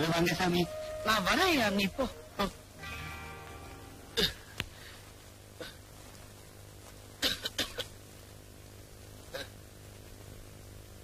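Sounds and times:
faint low hum: 0.0 - 11.0
person coughing: 4.2 - 4.5, 5.6 - 5.8, 7.2 - 7.9.

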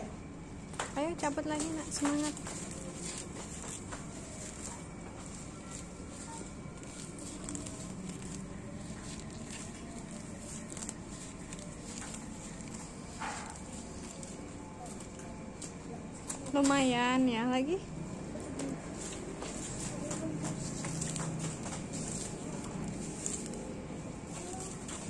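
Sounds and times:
grass being pulled up by hand: 1.5 - 16.8, 18.6 - 25.0.

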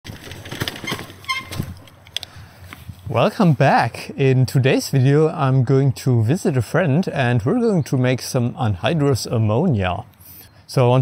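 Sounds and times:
bicycle rattling over cobblestones: 0.1 - 2.0
bicycle squeak: 0.4 - 1.8.

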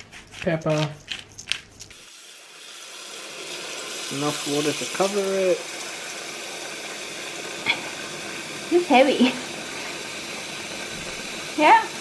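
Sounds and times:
pepper grinder crunching: 0.0 - 2.1
tap water running into pot: 1.9 - 12.0.

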